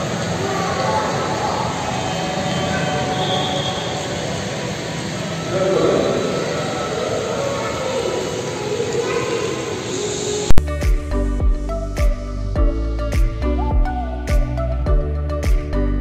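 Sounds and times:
faint music: 0.0s - 16.0s
indoor hall hum: 0.0s - 16.0s
music with soft beat: 10.5s - 16.0s.

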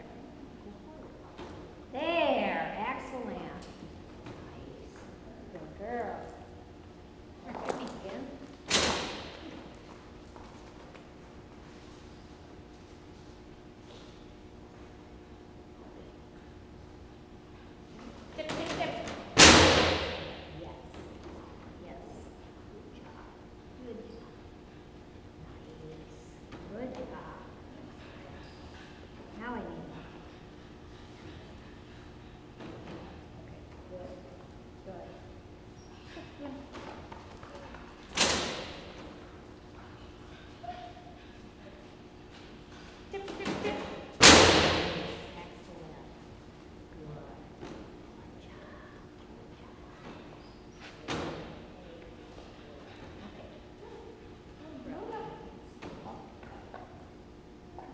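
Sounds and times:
plank slamming onto metal frame: 44.2s - 45.2s.

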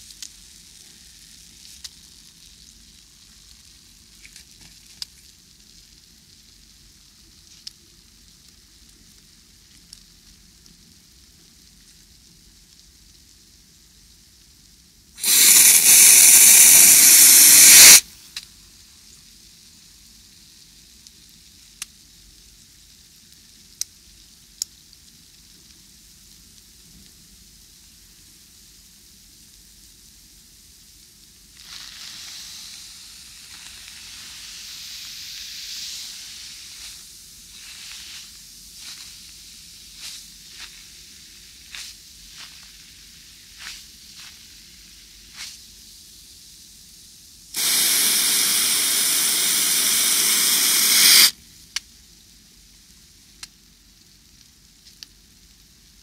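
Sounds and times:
foam bubbles fizzing and popping: 15.2s - 18.0s, 19.1s - 46.1s, 47.6s - 51.8s
loud hiss: 15.2s - 18.3s, 31.5s - 46.9s, 47.5s - 51.4s.

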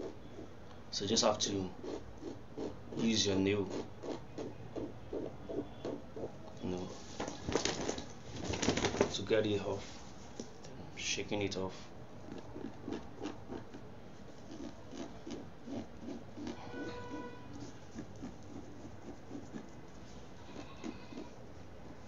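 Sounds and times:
fingernails scraping fabric print: 12.3s - 22.0s.

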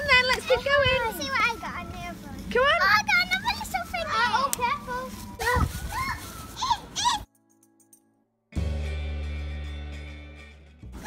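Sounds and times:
children squealing: 5.4s - 7.3s.

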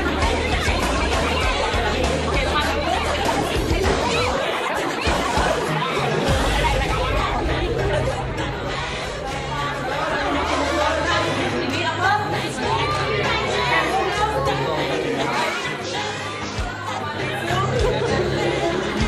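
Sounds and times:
background music with bass line: 0.0s - 4.4s, 5.1s - 15.4s
children chattering: 0.0s - 19.0s.

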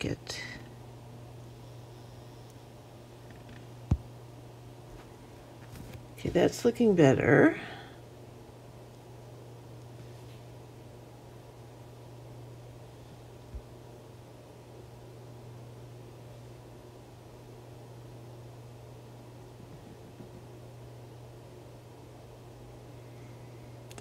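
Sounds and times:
low hum with faint hiss: 0.0s - 24.0s.

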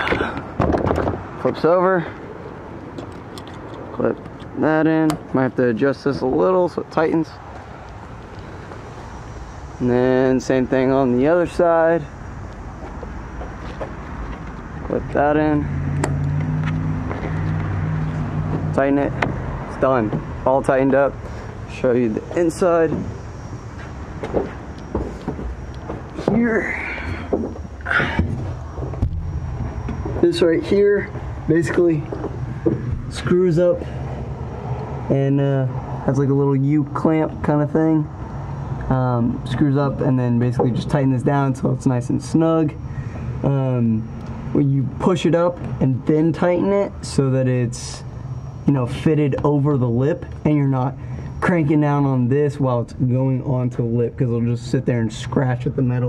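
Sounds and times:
outdoor background noise: 0.0s - 56.0s
vehicle engine idling: 1.4s - 56.0s.

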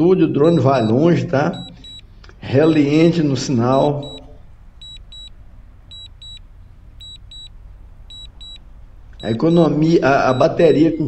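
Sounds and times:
low steady hum: 0.0s - 11.0s
remote controller double beeps: 0.4s - 3.0s, 4.0s - 5.3s, 5.9s - 6.4s, 7.0s - 11.0s.

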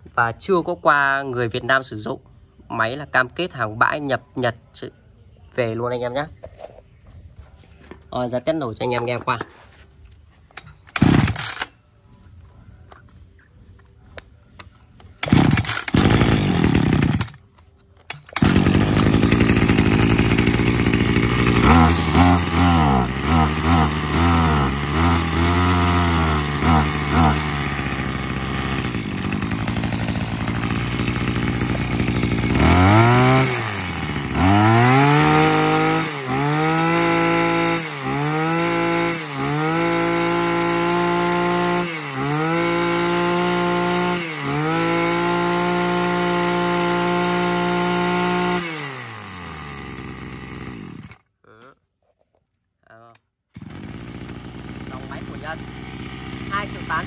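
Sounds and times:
brush cutter engine revving: 10.8s - 11.7s, 15.2s - 17.4s, 18.1s - 51.3s, 53.6s - 57.0s.

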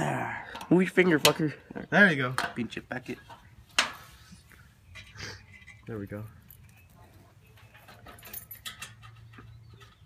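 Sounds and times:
metallic clicks and rattles: 7.5s - 10.0s.

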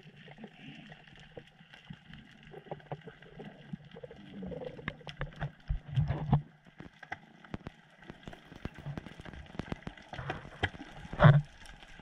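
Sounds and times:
faint clicks and knocks: 1.0s - 12.0s.

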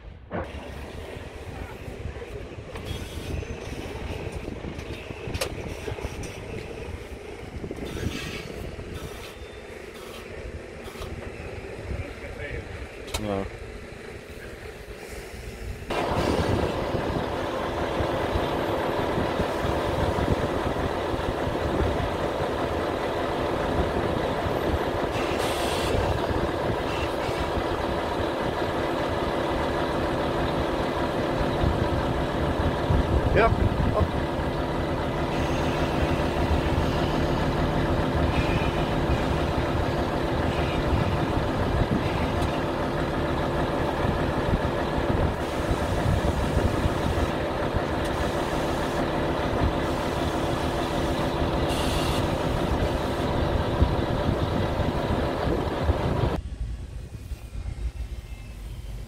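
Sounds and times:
diesel truck engine idling: 0.0s - 56.4s.

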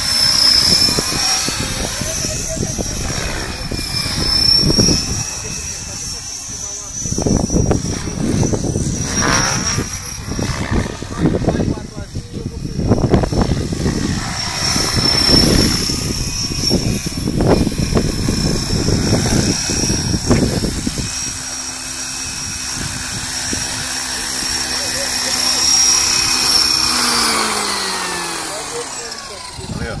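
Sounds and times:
gusty wind noise: 0.0s - 24.9s, 29.4s - 30.0s
model helicopter motor whine: 0.0s - 30.0s
rotor humming spinning down: 0.0s - 30.0s.

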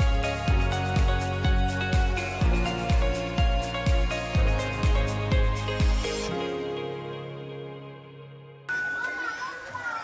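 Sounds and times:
sustained background music: 0.0s - 9.8s
children calling out and playing: 8.8s - 10.0s.

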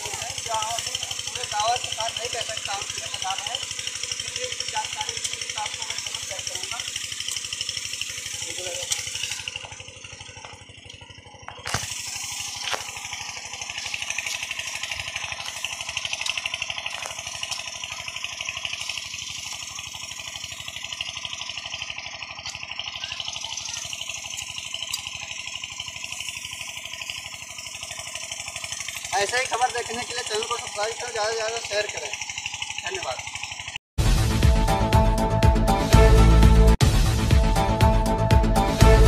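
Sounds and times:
motor running with pulsing beat: 0.0s - 39.0s.

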